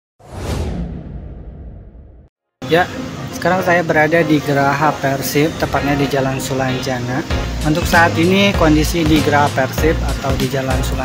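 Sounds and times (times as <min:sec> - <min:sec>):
deep rumble: 0:00.2 - 0:02.3
whoosh: 0:00.2 - 0:02.3.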